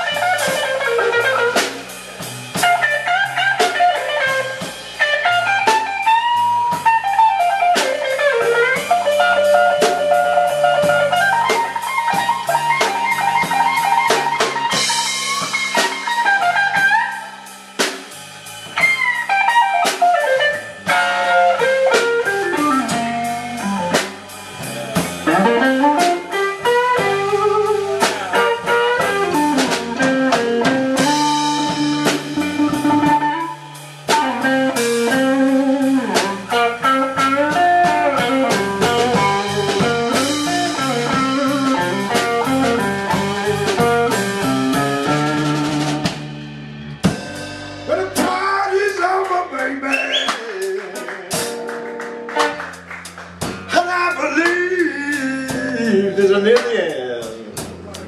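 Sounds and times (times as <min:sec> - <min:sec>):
electric guitar lead with bent notes: 0:00.0 - 0:17.6, 0:18.7 - 0:56.5
bass: 0:00.0 - 0:58.0
drum kit: 0:00.0 - 0:58.0.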